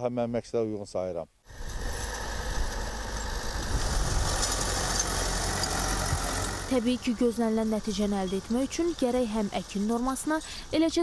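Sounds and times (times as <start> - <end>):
diesel tractor engine running: 1.5 - 11.0.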